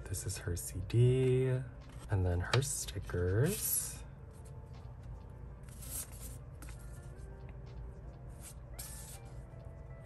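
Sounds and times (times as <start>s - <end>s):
faint lo-fi music: 0.0s - 10.0s
paper sticker sheets rustling: 5.6s - 7.2s, 8.4s - 9.4s.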